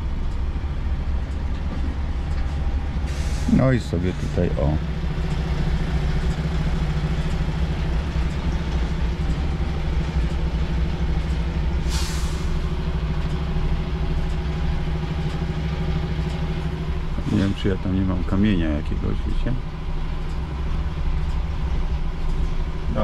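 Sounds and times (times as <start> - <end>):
diesel truck engine running: 0.0 - 23.0
air hissing: 3.1 - 3.7, 11.8 - 12.8.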